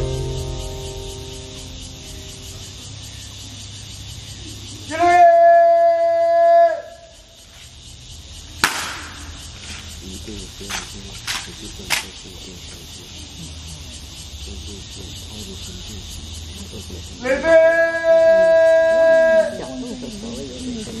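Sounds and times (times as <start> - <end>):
background music: 0.0 - 2.8
sharp crack: 8.6 - 9.9, 10.6 - 12.2.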